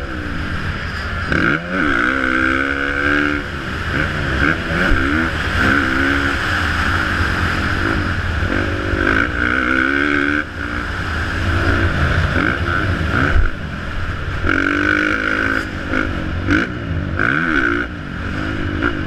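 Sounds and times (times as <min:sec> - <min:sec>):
motocross bike engine revving: 0:00.0 - 0:19.0.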